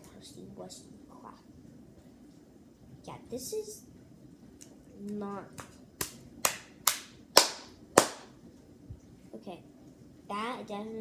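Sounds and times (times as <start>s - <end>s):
hands clapping: 4.6s - 8.3s.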